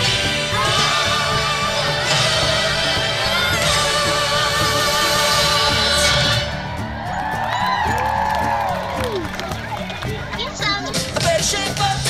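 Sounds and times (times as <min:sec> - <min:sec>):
film music over speakers: 0:00.0 - 0:12.0
voices and whoops: 0:06.6 - 0:09.8.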